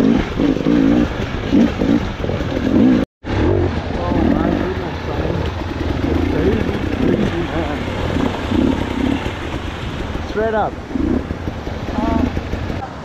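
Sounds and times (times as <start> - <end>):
dirt bike engines revving: 0.0 - 12.9.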